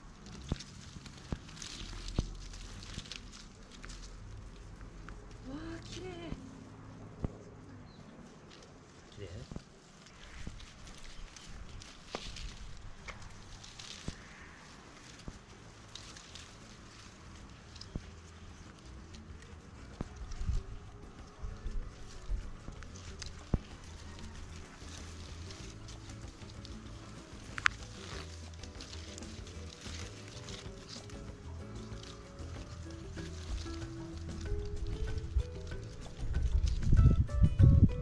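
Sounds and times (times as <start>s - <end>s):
rustling of palm fronds: 0.0s - 38.0s
low knocking beat: 17.1s - 38.0s.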